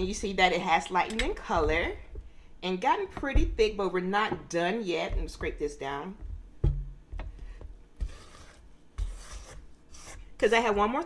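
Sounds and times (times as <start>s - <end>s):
spatula scraping metal bowl: 8.0s - 11.0s.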